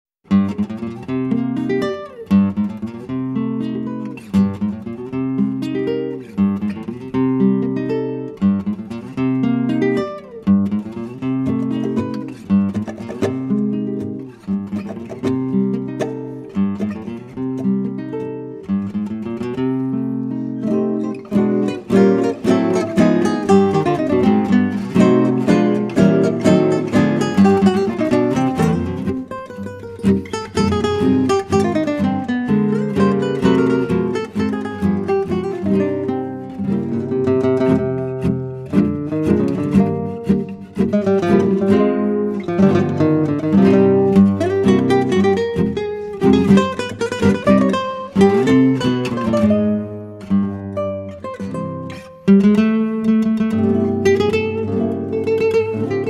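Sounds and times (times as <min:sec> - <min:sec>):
acoustic guitar music: 0:00.2 - 0:56.0.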